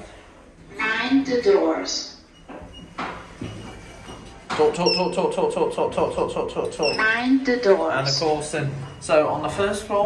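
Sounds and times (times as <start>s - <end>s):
lift doors sliding: 2.3s - 5.3s.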